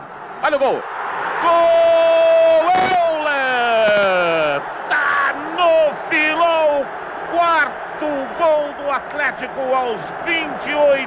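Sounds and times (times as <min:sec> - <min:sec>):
rapid play-by-play commentary: 0:02.8 - 0:11.0.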